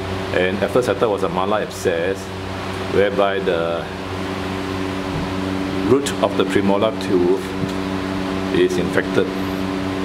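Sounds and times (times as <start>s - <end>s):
machine hum: 0.0s - 10.0s
man speaking: 2.9s - 4.0s, 5.8s - 7.6s, 8.5s - 9.4s.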